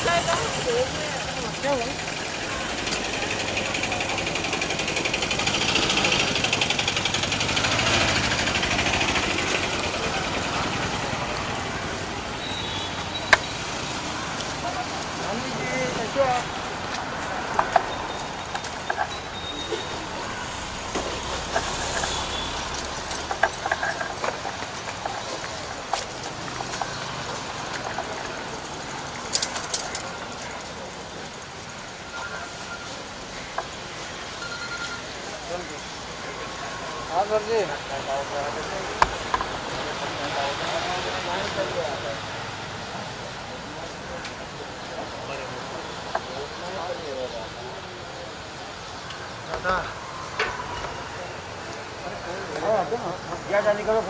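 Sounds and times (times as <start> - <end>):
people talking: 0.0 - 16.6, 29.6 - 42.3, 43.0 - 50.0
traffic: 0.0 - 54.0.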